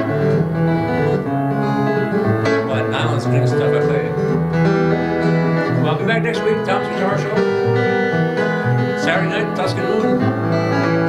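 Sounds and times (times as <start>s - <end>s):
acoustic guitar notes: 0.0s - 11.0s.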